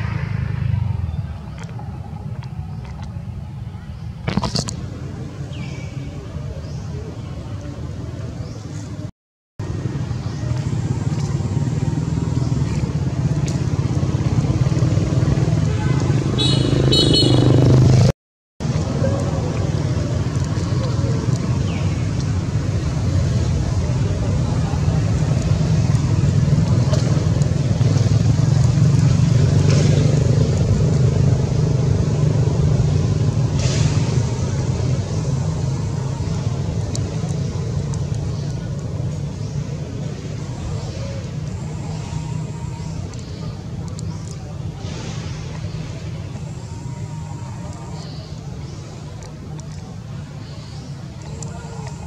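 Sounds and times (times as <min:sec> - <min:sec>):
low motor rumble: 0:00.0 - 0:52.0
faint clicks: 0:36.3 - 0:39.0, 0:42.9 - 0:44.6, 0:47.3 - 0:52.0.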